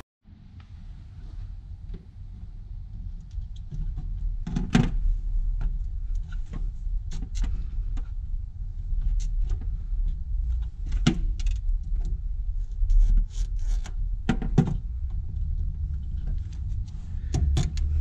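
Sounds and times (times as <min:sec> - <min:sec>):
steady low rumble: 0:00.2 - 0:18.0.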